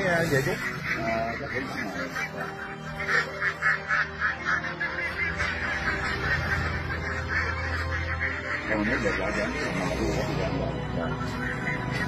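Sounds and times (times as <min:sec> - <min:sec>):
ducks quacking: 0:00.0 - 0:12.0.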